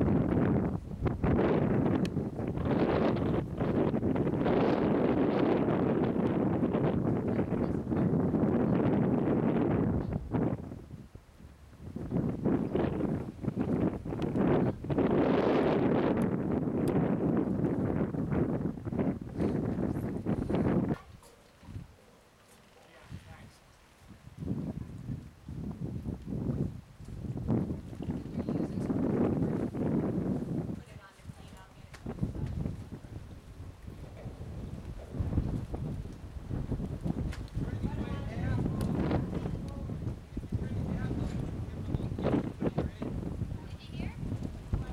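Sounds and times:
wind buffeting microphone: 0:00.0 - 0:22.0, 0:22.9 - 0:44.9.

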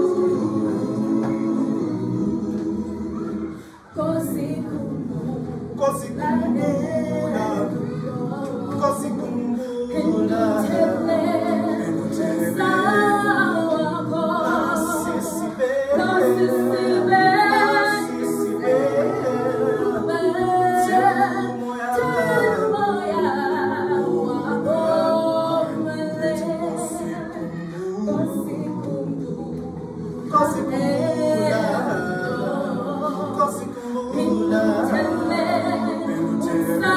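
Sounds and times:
mixed choir singing a cappella: 0:00.0 - 0:36.9.

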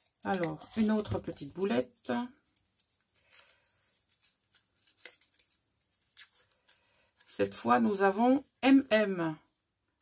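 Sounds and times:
paper crinkling: 0:00.0 - 0:08.9.

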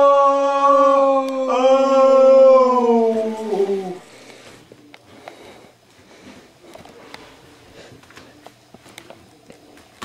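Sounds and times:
man howling long note: 0:00.0 - 0:04.1.

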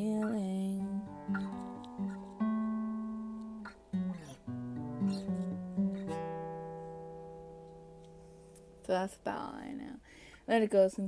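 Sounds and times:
acoustic guitar strumming: 0:00.0 - 0:09.7.

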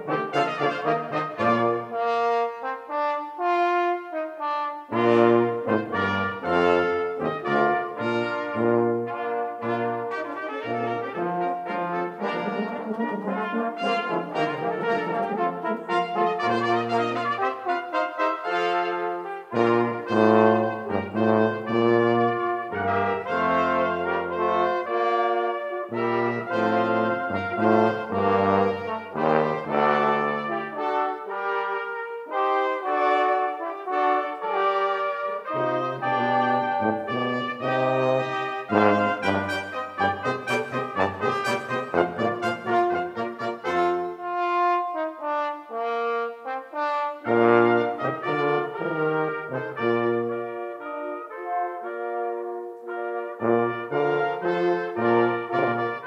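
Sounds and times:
brass quintet playing chords: 0:00.0 - 0:56.0
tuba bass line: 0:00.0 - 0:56.0.

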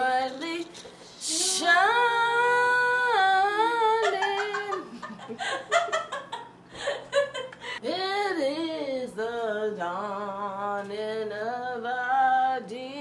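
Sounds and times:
woman singing unaccompanied: 0:00.0 - 0:05.0, 0:07.8 - 0:13.0
laughter: 0:03.8 - 0:07.7.

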